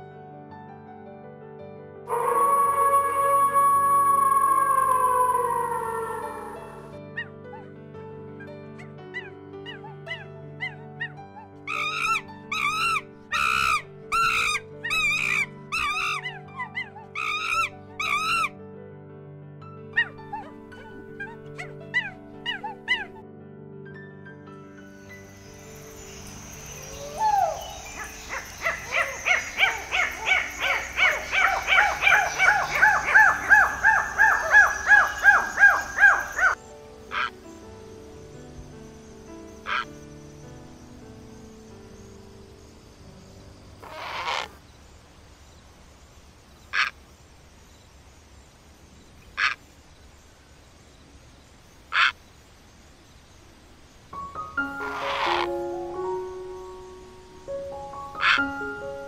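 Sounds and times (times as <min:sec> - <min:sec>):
soft background music: 0:00.0 - 0:45.6, 0:54.1 - 0:59.0
lemur calls: 0:02.1 - 0:07.3, 0:09.1 - 0:18.5, 0:20.0 - 0:23.2, 0:26.2 - 0:37.3, 0:39.6 - 0:40.0, 0:43.8 - 0:44.6, 0:46.7 - 0:47.0, 0:49.2 - 0:49.6, 0:51.9 - 0:52.2, 0:54.6 - 0:56.2, 0:57.9 - 0:59.0.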